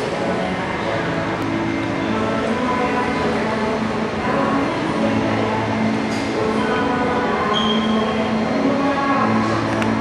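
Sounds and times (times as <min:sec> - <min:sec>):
echoing hall hubbub: 0:00.0 - 0:10.0.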